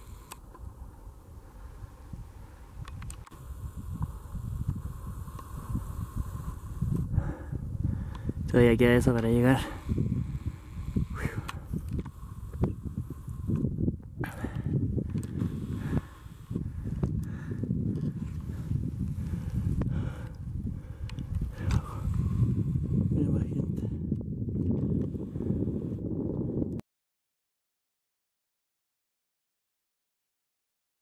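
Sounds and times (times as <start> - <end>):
wind buffeting microphone: 0.0 - 26.8.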